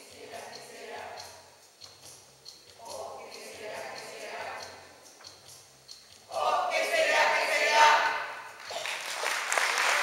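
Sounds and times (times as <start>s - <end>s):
audience applause: 8.6s - 10.0s.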